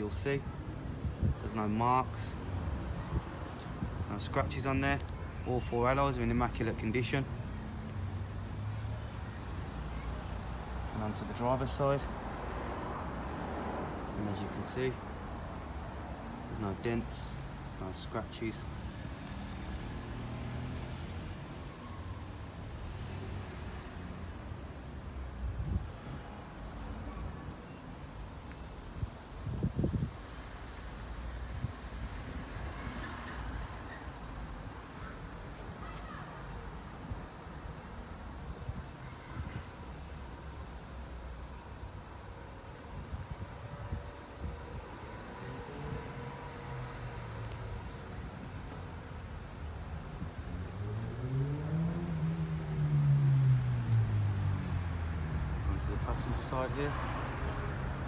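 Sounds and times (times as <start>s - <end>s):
outdoor background noise: 0.0s - 58.0s
vehicle engine passing by: 19.8s - 21.3s, 50.5s - 54.4s.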